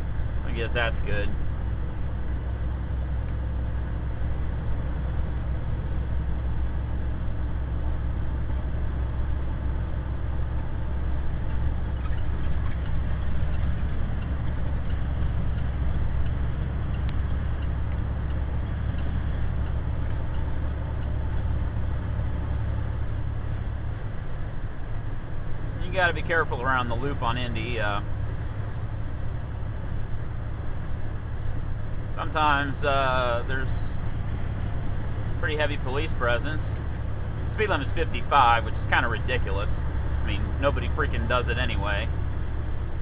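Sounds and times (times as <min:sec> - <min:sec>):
truck engine and road noise: 0:00.0 - 0:43.0.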